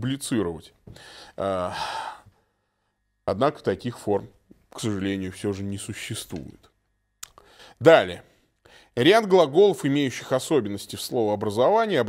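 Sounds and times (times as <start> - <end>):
man sighing: 0.9 - 2.3.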